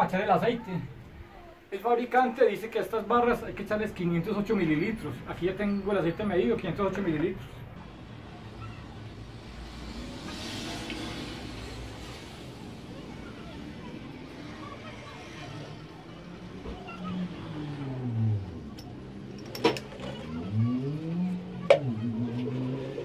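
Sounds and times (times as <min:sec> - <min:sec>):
passing vehicle engine: 0:07.6 - 0:23.0.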